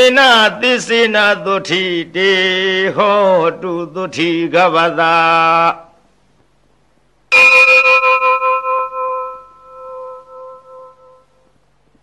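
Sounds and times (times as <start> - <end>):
metal bell ringing: 7.3 - 11.5.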